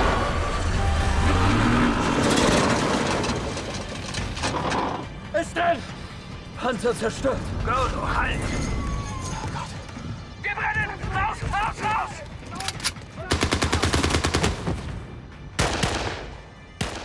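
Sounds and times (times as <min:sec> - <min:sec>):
machine gun firing bursts: 0:13.3 - 0:14.7.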